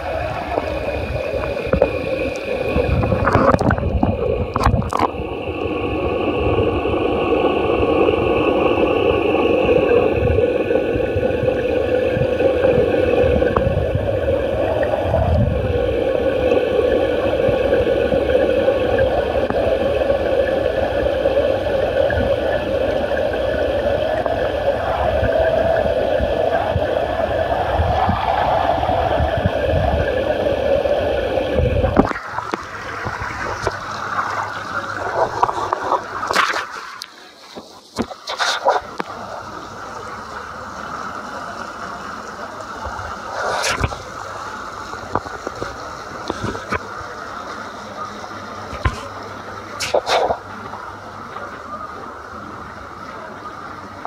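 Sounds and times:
running water rushing: 0:00.0 - 0:54.0.

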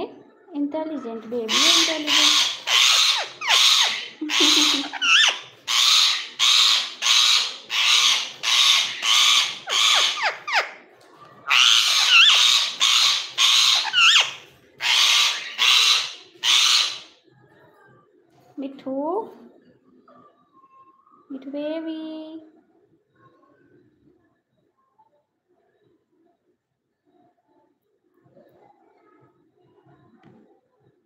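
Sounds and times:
parakeet giving harsh hissing calls: 0:01.5 - 0:10.6, 0:11.5 - 0:17.1.

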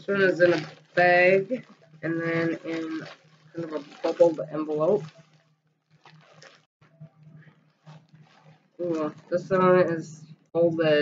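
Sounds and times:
plastic mailer rustling: 0:00.0 - 0:06.7, 0:07.8 - 0:09.9.

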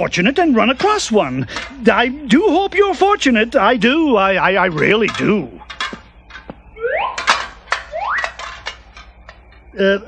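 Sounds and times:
metal armour clanking: 0:02.5 - 0:09.5
rising whistle-like glides: 0:06.6 - 0:08.4.

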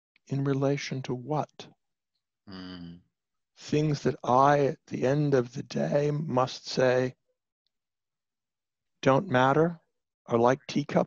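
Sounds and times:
man speaking: 0:00.3 - 0:01.6, 0:02.5 - 0:02.9, 0:03.6 - 0:07.1, 0:09.0 - 0:11.0.

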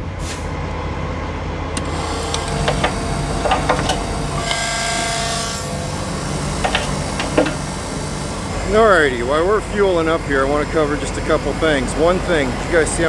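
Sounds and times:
low engine hum: 0:01.2 - 0:13.0
fuel pump clicks and metal knocks: 0:01.8 - 0:04.8, 0:06.1 - 0:07.9
whine with hiss: 0:01.8 - 0:12.9.

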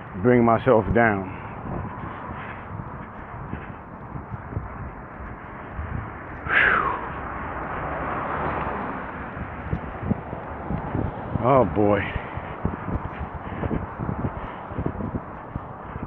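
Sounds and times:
footsteps: 0:00.0 - 0:16.0
street noise: 0:00.0 - 0:16.0
traffic noise: 0:00.0 - 0:16.0.

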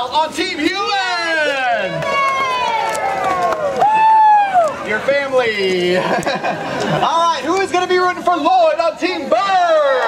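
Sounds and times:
loud drawn-out yell: 0:00.8 - 0:04.8
children cheering and yelling: 0:00.8 - 0:05.0.

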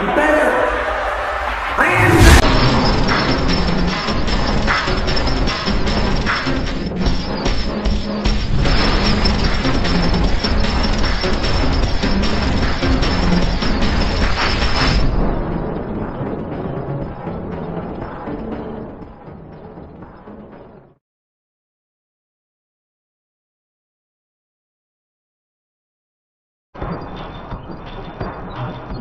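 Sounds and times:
loud action music: 0:00.0 - 0:21.0
booms crashes and impacts: 0:01.9 - 0:18.4.

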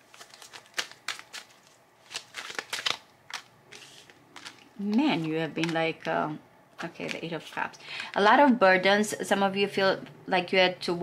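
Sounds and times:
cards being shuffled: 0:00.0 - 0:06.2, 0:06.8 - 0:08.2.

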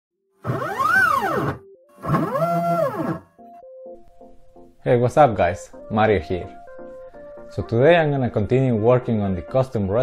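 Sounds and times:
rising and falling synth tone: 0:00.6 - 0:03.2.

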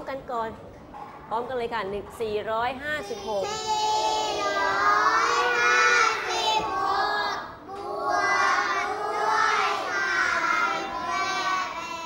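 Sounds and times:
children chanting in unison: 0:03.6 - 0:12.0.

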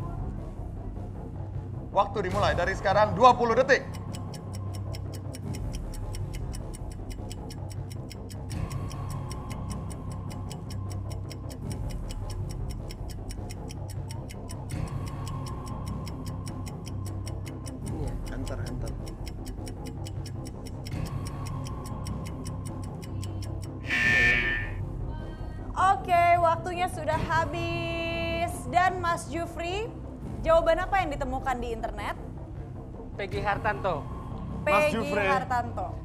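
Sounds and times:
low pulsing music: 0:00.0 - 0:36.0
clock ticking: 0:03.4 - 0:24.8
high electronic alarm tone: 0:23.8 - 0:24.8.

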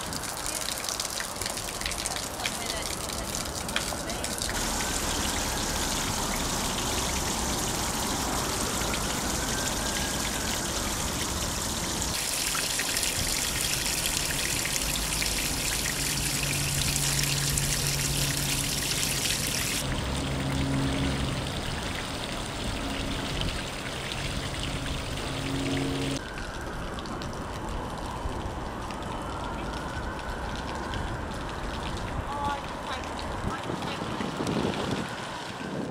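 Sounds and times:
hose spraying water on cobblestones: 0:00.0 - 0:26.2, 0:27.3 - 0:35.9.

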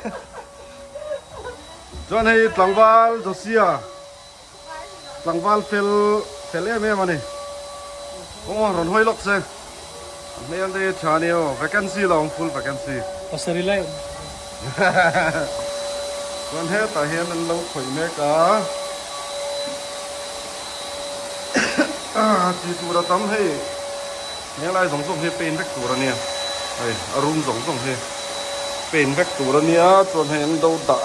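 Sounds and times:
faint high hum: 0:00.0 - 0:30.3
man speaking: 0:02.1 - 0:03.9, 0:10.4 - 0:14.0, 0:16.5 - 0:18.7, 0:22.1 - 0:23.8, 0:24.6 - 0:28.1, 0:28.9 - 0:31.0
person coughing: 0:21.5 - 0:22.0.

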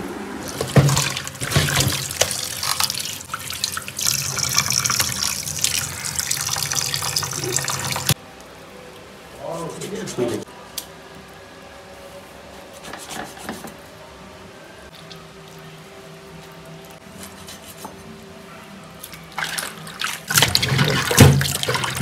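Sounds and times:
tap water splashing into metal basin: 0:00.5 - 0:08.2, 0:19.4 - 0:22.0.

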